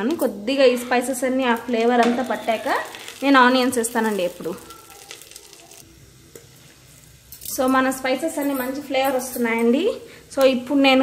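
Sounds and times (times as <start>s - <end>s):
spices sizzling in hot oil: 0.0s - 11.0s.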